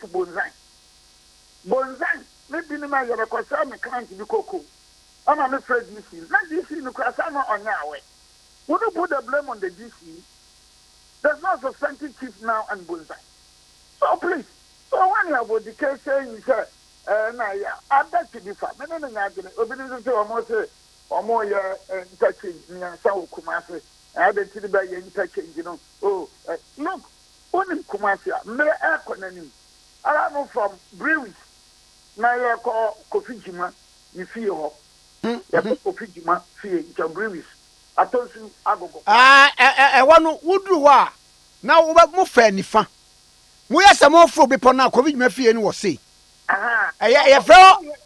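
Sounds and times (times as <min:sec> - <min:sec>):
speech over telephone line: 0:00.0 - 0:00.6, 0:01.7 - 0:08.0, 0:08.7 - 0:10.2, 0:11.2 - 0:13.2, 0:14.0 - 0:31.4, 0:32.2 - 0:42.9, 0:43.7 - 0:48.0
faint electrical line hum: 0:00.0 - 0:48.0.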